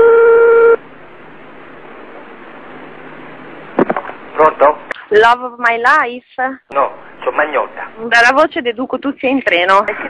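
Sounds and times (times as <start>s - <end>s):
faint phone line hiss: 0.0s - 0.8s
telephone tone: 0.0s - 0.8s.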